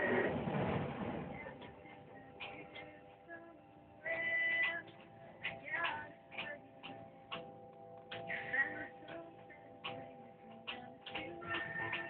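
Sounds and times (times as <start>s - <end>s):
faint music with held notes: 0.0s - 12.0s.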